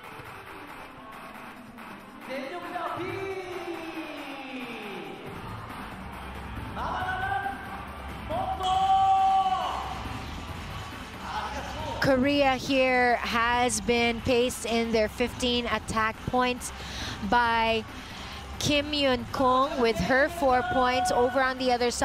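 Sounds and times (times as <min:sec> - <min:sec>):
music in a hall: 0:00.0 - 0:12.0.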